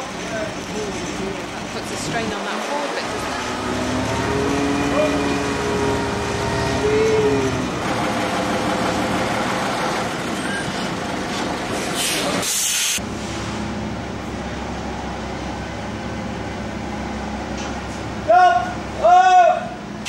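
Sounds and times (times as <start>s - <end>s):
heavy vehicle engine running: 0.0s - 20.0s
air hiss: 11.8s - 13.0s.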